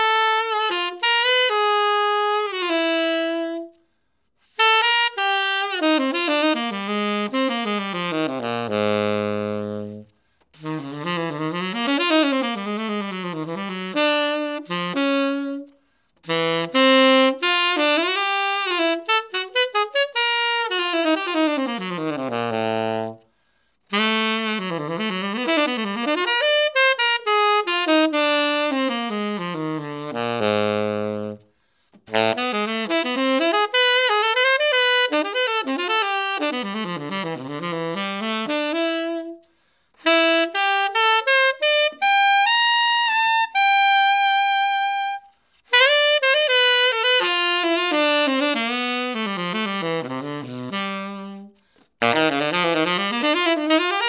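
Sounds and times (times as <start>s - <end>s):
solo tenor saxophone jazz runs: 0.0s - 54.0s
saxophonist breathing: 23.2s - 23.9s, 31.4s - 32.1s, 39.4s - 40.0s, 51.5s - 52.0s.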